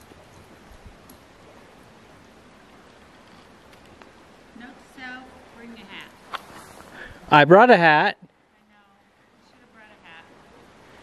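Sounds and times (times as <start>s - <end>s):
outdoor background noise: 0.0s - 11.0s
soft ticks: 1.0s - 1.2s.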